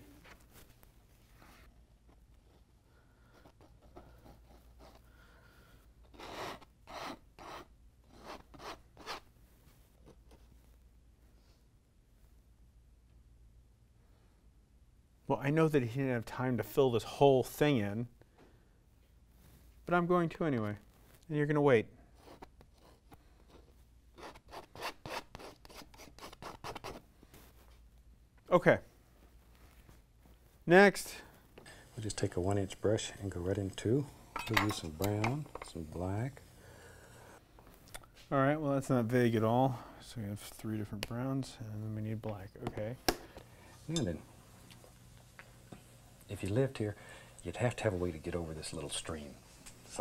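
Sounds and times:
palette knife scraping canvas: 0:06.1 - 0:09.2, 0:22.2 - 0:27.0.

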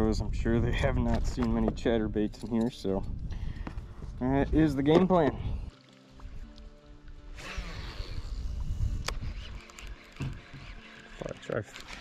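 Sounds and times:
background music: 0:03.8 - 0:08.5.

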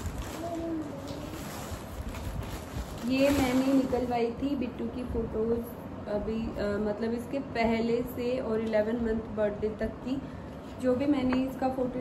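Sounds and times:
plastic bag rustling: 0:00.0 - 0:04.6.

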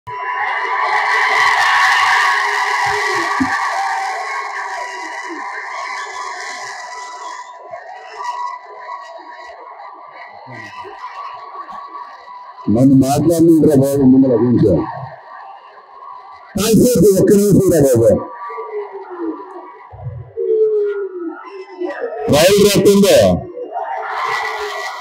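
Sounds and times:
crowd cheering in a hall: 0:00.1 - 0:12.7, 0:21.3 - 0:25.0.

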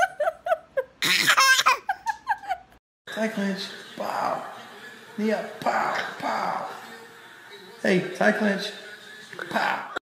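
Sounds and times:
baby laughing: 0:00.0 - 0:02.8.

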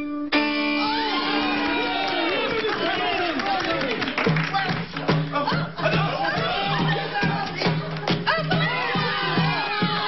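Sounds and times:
performers whooping and shouting: 0:00.7 - 0:04.0, 0:05.3 - 0:10.0.

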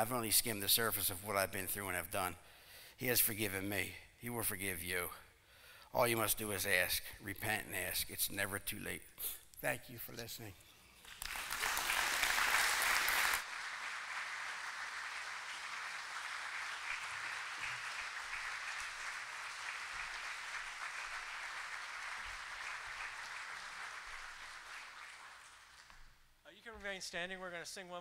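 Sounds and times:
congregation applauding: 0:11.0 - 0:26.2.

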